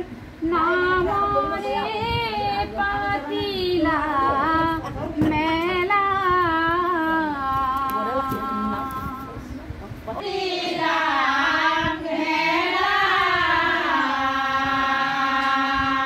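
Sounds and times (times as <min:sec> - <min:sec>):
woman singing devotional song: 0:00.0 - 0:16.0.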